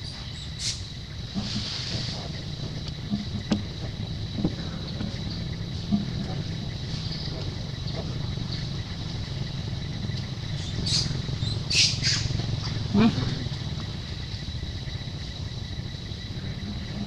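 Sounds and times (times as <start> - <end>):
steady low hum: 0.0 - 17.0
high-pitched squawking animal calls: 10.6 - 13.4.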